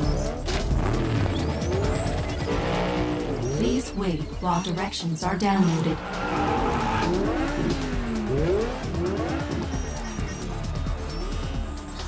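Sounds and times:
car engines revving: 0.0 - 12.0
film score music: 0.0 - 12.0.

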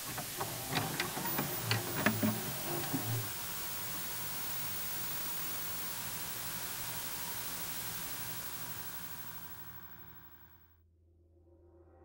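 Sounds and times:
tv static hiss: 0.0 - 10.6
low electrical buzzes: 0.0 - 10.7.

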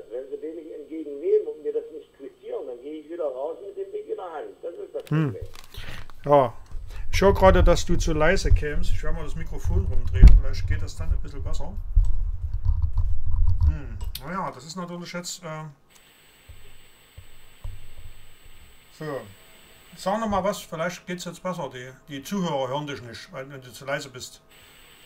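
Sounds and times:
caller talking over telephone: 0.0 - 5.5
studio talk: 0.0 - 11.8, 18.9 - 24.4
microphone handling noise: 5.1 - 14.2, 16.5 - 18.6
sharp knock on microphone: 17.6 - 18.1.

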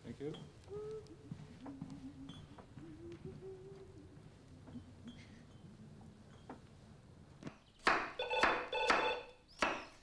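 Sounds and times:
telephone double ring: 8.2 - 9.4.

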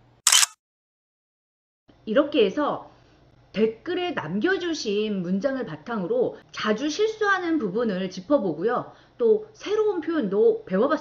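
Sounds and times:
short burst of noise: 0.0 - 0.6.

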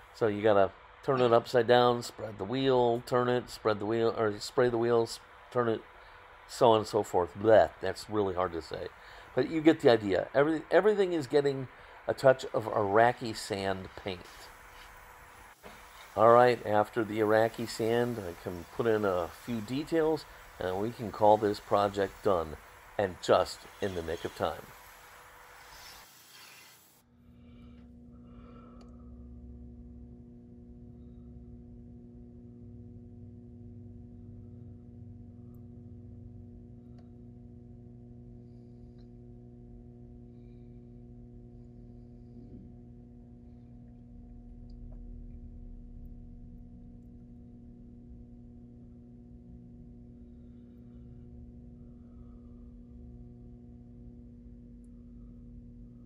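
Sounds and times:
faint steady hiss: 0.0 - 27.0
faint steady low hum: 0.0 - 56.0.

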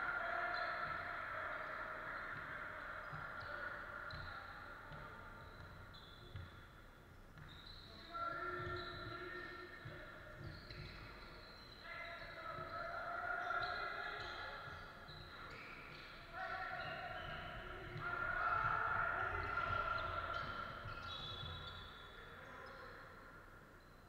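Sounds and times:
basketball bouncing: 1.7 - 6.7, 8.6 - 11.6.

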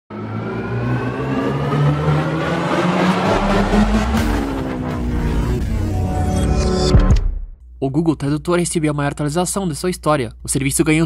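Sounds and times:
noisy swell: 0.1 - 6.6
synthesized intro music: 0.1 - 7.5.

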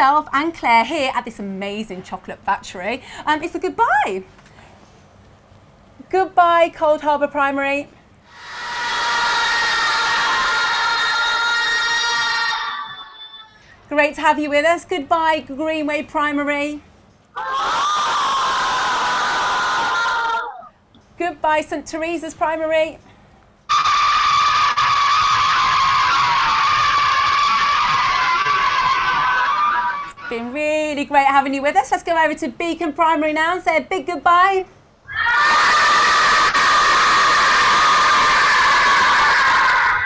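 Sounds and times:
children shouting together: 8.3 - 13.4, 17.4 - 20.7, 35.1 - 40.0.

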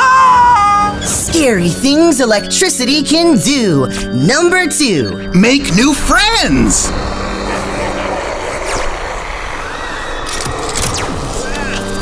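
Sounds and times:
electricity crackling and buzzing: 5.3 - 12.0.

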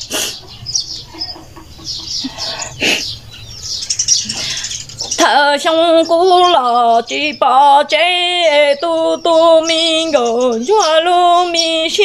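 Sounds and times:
chickens clucking: 0.0 - 6.6
small birds chirping: 0.0 - 12.0.

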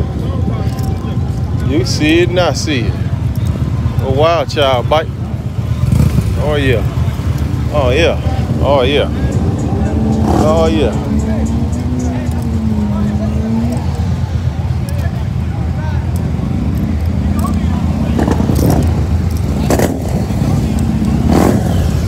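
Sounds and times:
motorcycle engines rumbling: 0.0 - 22.0
voices: 0.0 - 22.0.

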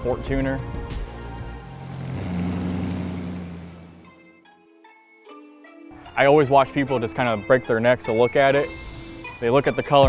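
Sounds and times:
car exhaust driving by: 1.0 - 4.2.

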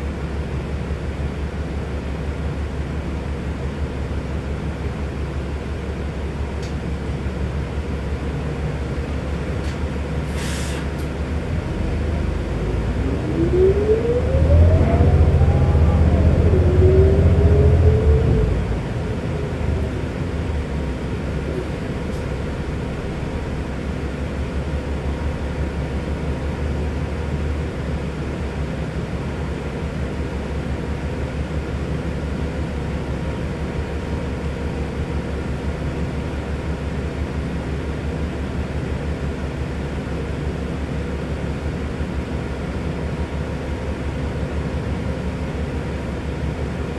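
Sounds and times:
bus engine and road rumble: 0.0 - 46.9
rising and falling whine: 11.5 - 20.8.

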